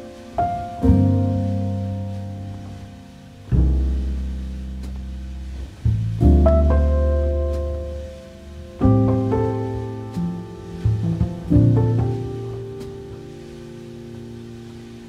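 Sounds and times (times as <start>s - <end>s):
jazz piano chords: 0.0s - 15.0s
deep bass note: 0.8s - 14.9s.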